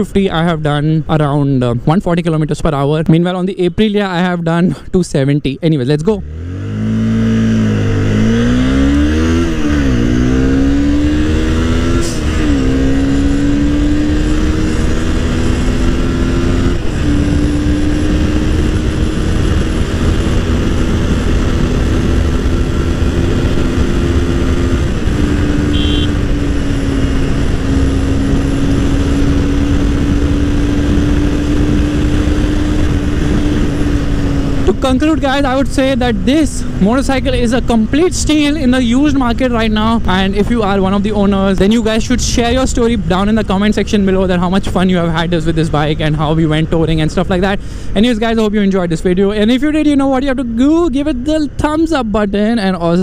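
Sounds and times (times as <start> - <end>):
motorcycle engine accelerating: 6.0 - 53.0
wind rush on microphone: 6.6 - 48.9.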